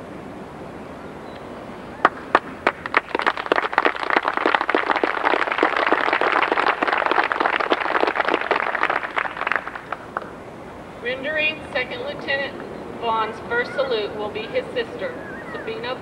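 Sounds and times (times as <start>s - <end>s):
audience applauding: 2.0s - 10.3s.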